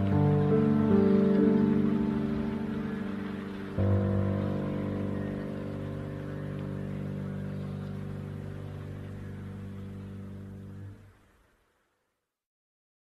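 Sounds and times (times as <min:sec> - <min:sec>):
solo piano chord: 0:00.0 - 0:11.0.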